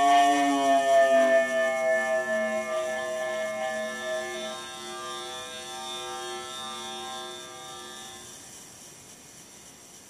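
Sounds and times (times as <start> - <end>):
electronic chord of held tones: 0.0 - 8.2
wavering high tone: 0.0 - 8.2
faint hiss: 0.0 - 10.0.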